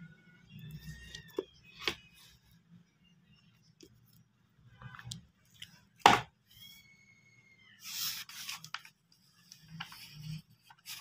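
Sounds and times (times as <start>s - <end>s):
book pages turning: 7.8s - 11.0s.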